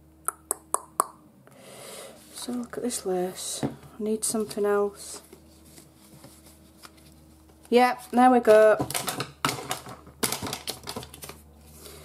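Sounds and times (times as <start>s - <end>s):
paper rustling: 4.3s - 8.2s.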